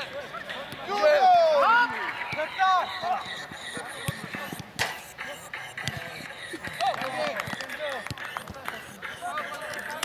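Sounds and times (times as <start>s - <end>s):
footballers shouting: 0.0s - 10.0s
ball being kicked: 5.8s - 8.7s.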